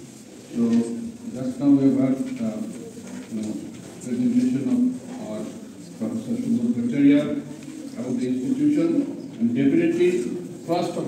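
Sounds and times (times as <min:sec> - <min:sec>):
person talking in reverberant hall: 0:00.0 - 0:11.0.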